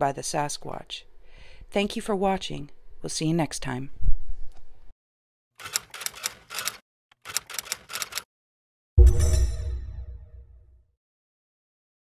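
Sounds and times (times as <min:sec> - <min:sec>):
typewriter key clacks: 0:05.6 - 0:08.3.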